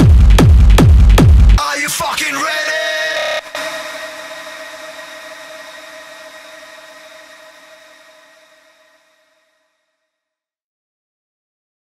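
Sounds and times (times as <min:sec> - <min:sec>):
synth drone: 0:03.3 - 0:09.5.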